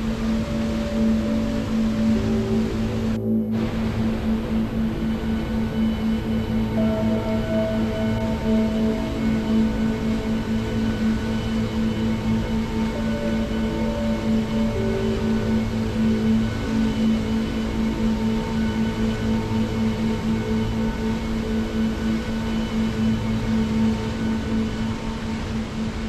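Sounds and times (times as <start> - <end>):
ambient drone music: 0.0 - 26.0.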